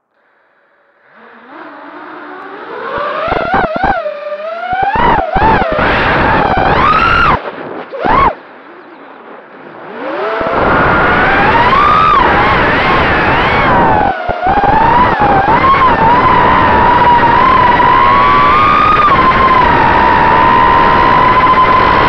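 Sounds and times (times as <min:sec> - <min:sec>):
drone motors whining: 0:00.0 - 0:22.0.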